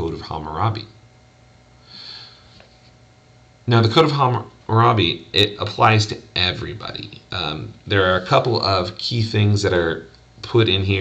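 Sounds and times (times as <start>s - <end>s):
man sniffing: 1.8s - 2.7s.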